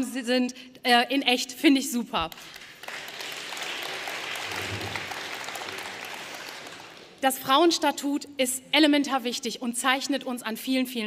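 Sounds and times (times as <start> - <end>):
audience applauding: 2.4 - 7.2.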